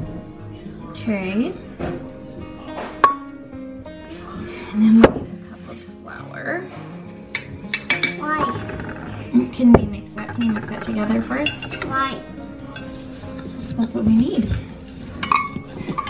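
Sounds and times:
soft background music: 0:00.0 - 0:16.0
utensils clinking on glass bowl: 0:07.3 - 0:09.3, 0:10.1 - 0:16.0.

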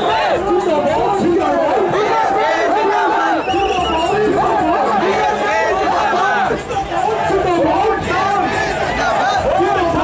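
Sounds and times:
crowd noise: 0:00.0 - 0:10.0
man shouting through loudspeaker: 0:00.0 - 0:10.0.

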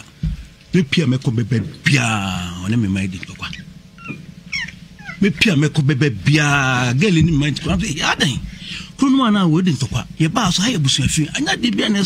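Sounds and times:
person speaking: 0:05.1 - 0:12.0.

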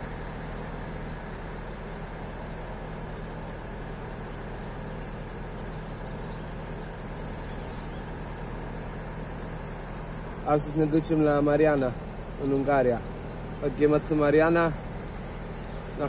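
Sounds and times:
diesel truck engine idling: 0:00.0 - 0:16.0
traffic noise: 0:00.0 - 0:16.0.

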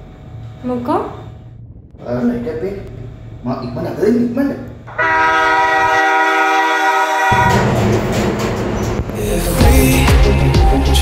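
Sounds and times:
train horn blast: 0:04.9 - 0:08.5
pop music with singing: 0:08.9 - 0:11.0.

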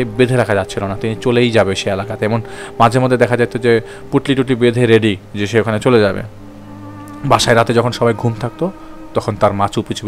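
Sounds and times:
man narrating: 0:00.0 - 0:06.4, 0:07.2 - 0:10.0
low background music drone: 0:00.0 - 0:10.0.

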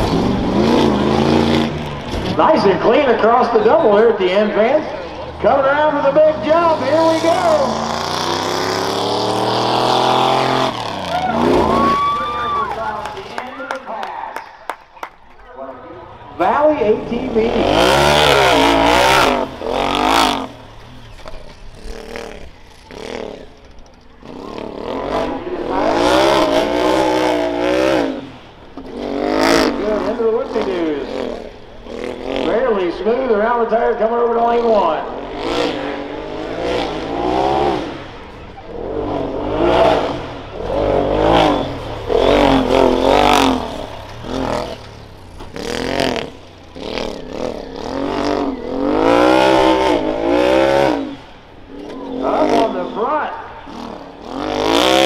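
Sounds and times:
utv engine revving: 0:00.0 - 0:13.5, 0:15.7 - 0:55.0.

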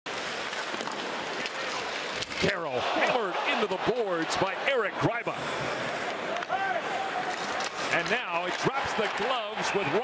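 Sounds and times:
arena crowd roar: 0:02.4 - 0:10.0.

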